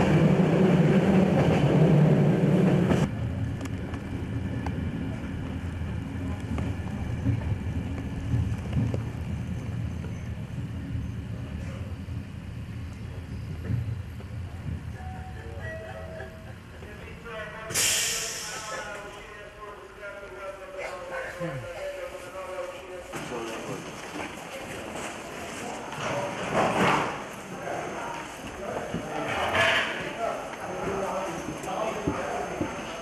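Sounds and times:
people talking: 15.0s - 23.8s, 27.5s - 33.0s
loud hiss: 17.7s - 19.0s.

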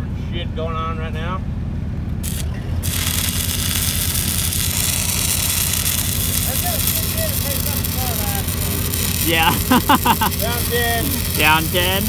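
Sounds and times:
welding machine engine drone: 1.5s - 12.0s
welding arc crackling and hissing: 2.2s - 12.0s.

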